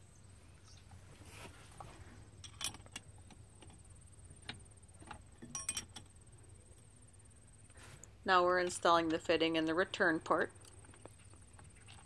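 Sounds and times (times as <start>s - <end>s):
ringing metal clink: 5.4s - 6.0s.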